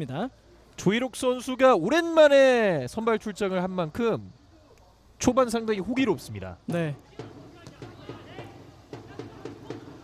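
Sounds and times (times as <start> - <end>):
open-air ambience of play: 0.0 - 10.0.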